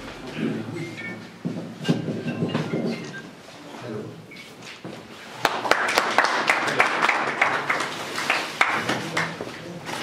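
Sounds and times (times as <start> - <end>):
small crowd applauding: 5.3 - 9.9.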